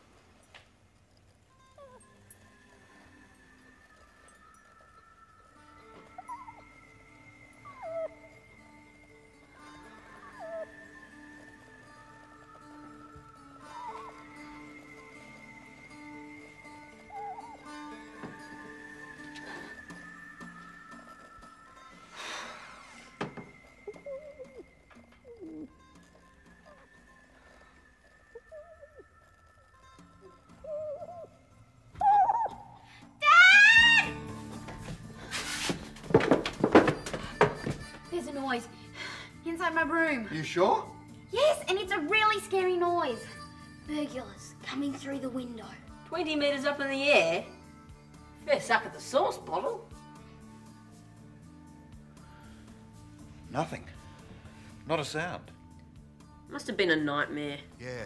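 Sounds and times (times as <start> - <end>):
eerie music held tones: 0.4 - 35.3
high squealing cry: 32.0 - 34.2.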